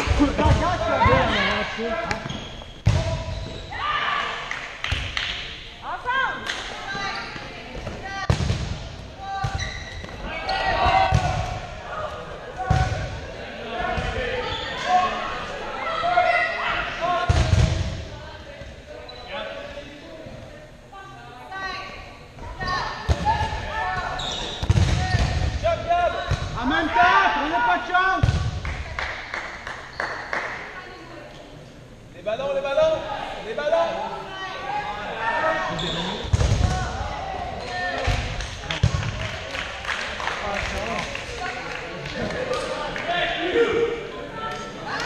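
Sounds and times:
players shouting and talking: 0.0 - 4.8, 5.4 - 28.7, 31.9 - 45.0.

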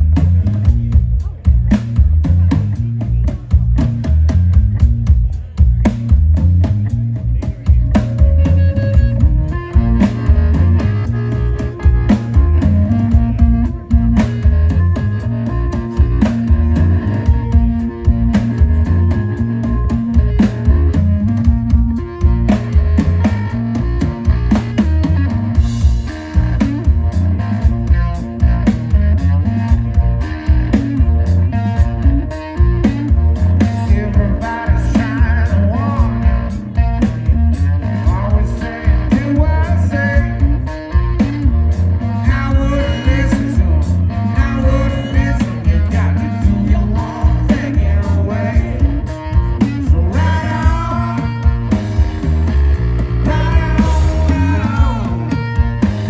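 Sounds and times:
drum kit: 0.0 - 56.0
electric bass: 0.0 - 56.0
electric guitar: 0.0 - 56.0.

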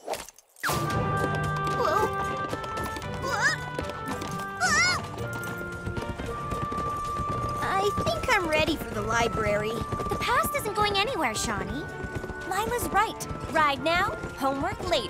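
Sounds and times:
upbeat cartoon music: 0.6 - 15.0
horse hooves clip-clopping: 0.8 - 15.0.

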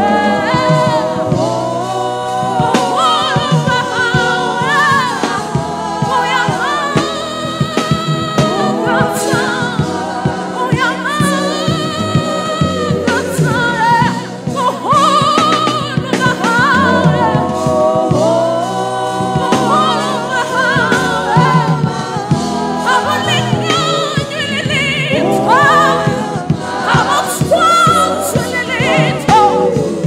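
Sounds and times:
backing singers: 0.0 - 30.0
woman singing gospel lead: 0.0 - 30.0.

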